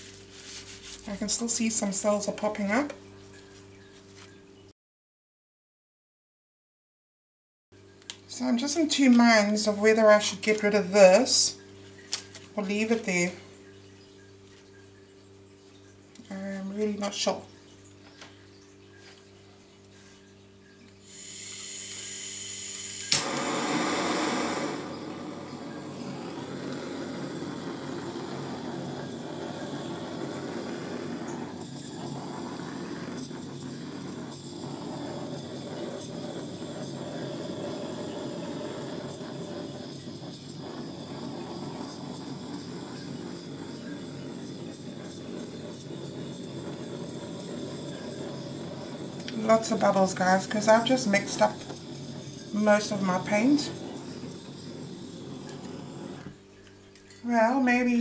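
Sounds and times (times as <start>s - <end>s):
gas hissing: 0.0s - 3.0s, 8.2s - 13.5s, 21.0s - 58.0s
torch flame rushing: 21.1s - 56.4s.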